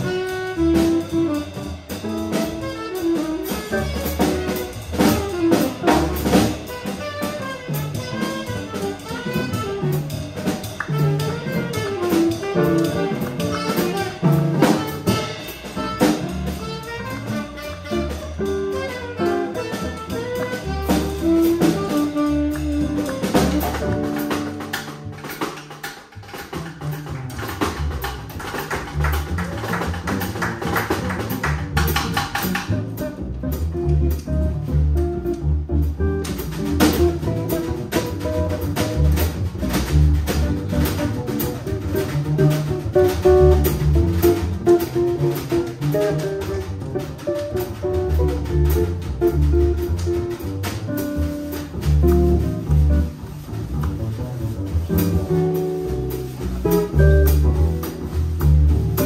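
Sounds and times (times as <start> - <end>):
drum kit with cymbals: 0.0 - 59.0
upright bass: 0.0 - 59.0.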